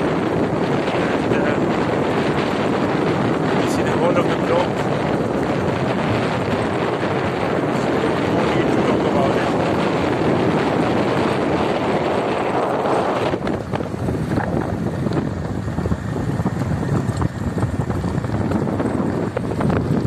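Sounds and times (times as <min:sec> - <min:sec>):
vehicle driving on dirt road: 0:00.0 - 0:20.0
wind buffeting microphone: 0:00.0 - 0:20.0.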